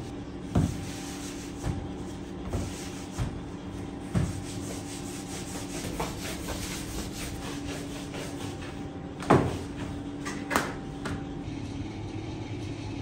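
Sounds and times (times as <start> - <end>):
dough rubbing strokes: 0.0 - 10.0
steady low hum: 0.0 - 13.0.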